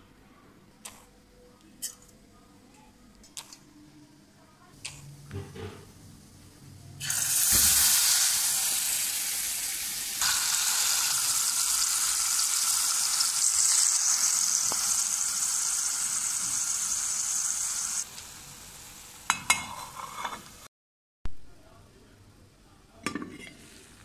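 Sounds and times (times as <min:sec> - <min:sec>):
chicken sizzling in hot oil: 0:07.0 - 0:20.7.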